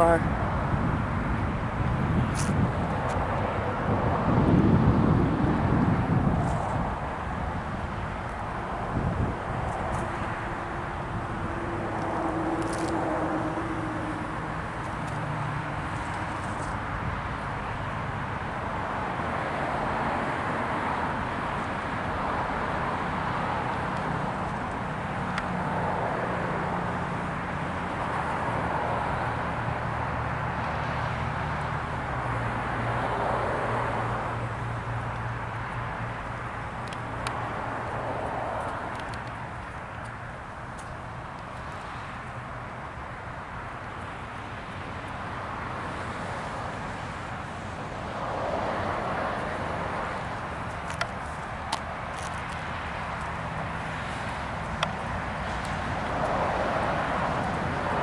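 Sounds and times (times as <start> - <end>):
outdoor rumble and hiss: 0.0 - 58.0.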